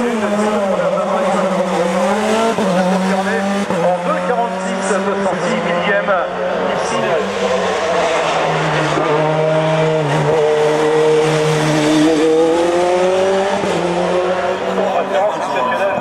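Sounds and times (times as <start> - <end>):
race car engine accelerating: 0.0 - 16.0.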